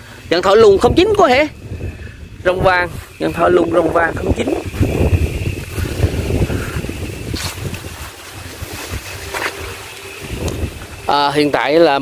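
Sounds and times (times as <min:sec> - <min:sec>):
wind buffeting microphone: 0:00.0 - 0:12.0
faint steady high tone: 0:08.1 - 0:12.0.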